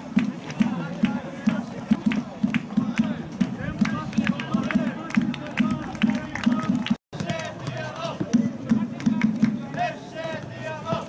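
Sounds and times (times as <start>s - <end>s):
people's voices: 0.0s - 11.0s.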